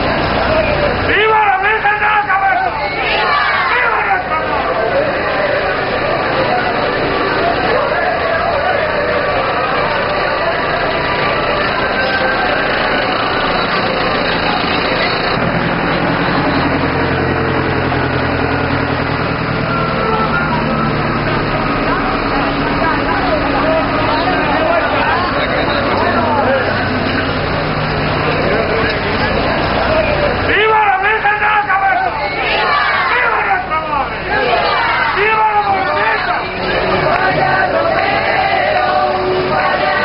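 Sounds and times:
crowd chatter: 0.0 - 40.0
tractor engine running: 0.0 - 40.0.

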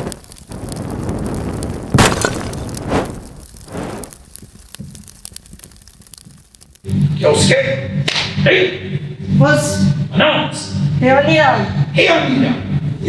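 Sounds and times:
crackling sparks: 0.0 - 8.4
noisy whoosh: 0.5 - 4.2
sharp impact hits: 1.9 - 4.1.

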